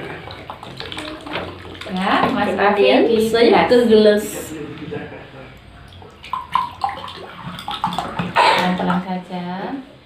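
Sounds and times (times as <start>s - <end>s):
water pouring into plastic bowl: 0.0s - 3.3s, 5.8s - 9.1s.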